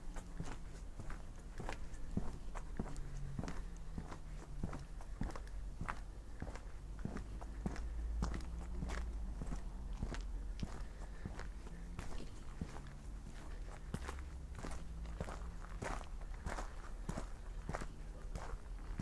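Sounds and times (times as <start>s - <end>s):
footsteps on tarmac: 0.0s - 19.0s
low continuous rumble: 0.0s - 19.0s.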